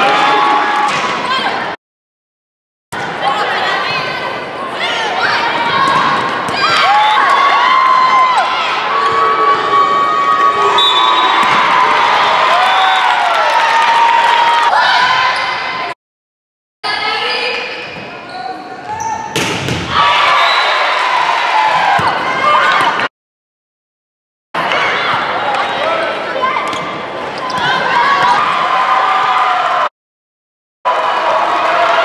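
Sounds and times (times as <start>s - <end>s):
shoes squeaking on court: 17.4s - 19.4s
volleyball struck with smacks: 19.3s - 20.0s.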